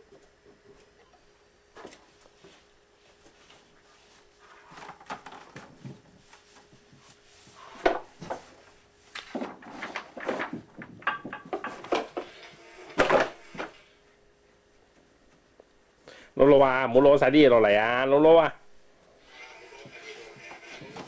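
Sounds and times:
plastic toys clattering: 9.3s - 12.1s.

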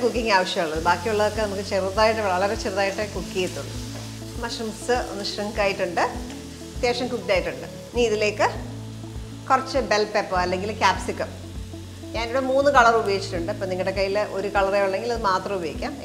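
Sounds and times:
mushrooms sizzling in a pan: 0.0s - 16.0s.

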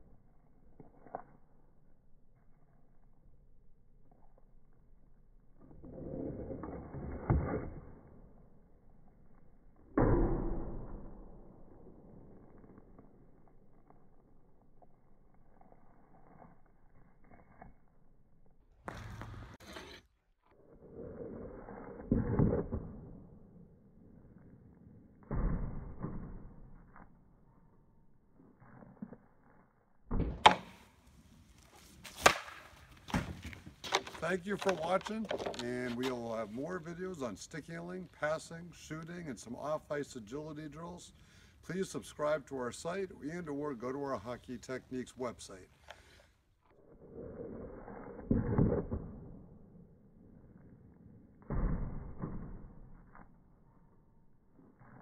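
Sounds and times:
hockey stick striking puck: 9.9s - 11.5s, 25.2s - 26.8s, 30.1s - 30.9s, 32.0s - 36.2s, 48.2s - 49.8s, 51.4s - 53.1s
puck scraping plastic pad: 30.5s - 36.6s.

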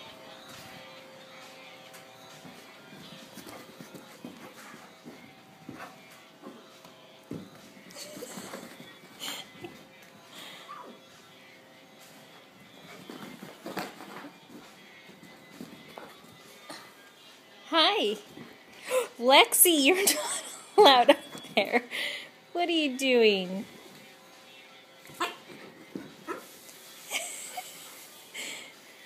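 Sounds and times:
dogs scuffling on carpet: 0.0s - 10.2s, 11.0s - 17.4s, 25.0s - 27.1s
faint music: 0.0s - 29.0s.

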